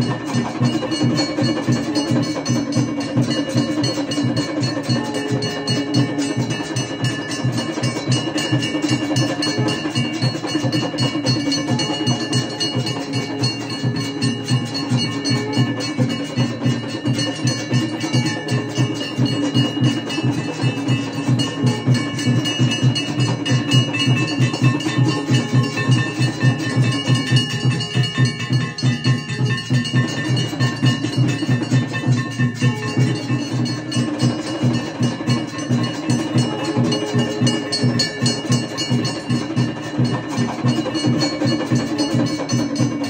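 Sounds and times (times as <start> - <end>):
fast steady drumbeat: 0.0 - 43.0
temple bells ringing: 0.0 - 43.0.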